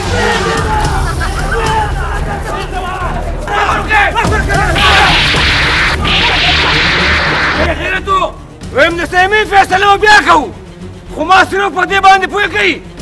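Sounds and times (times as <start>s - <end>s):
people shouting and yelling: 0.0s - 8.4s
loud noisy rushes: 4.8s - 7.7s.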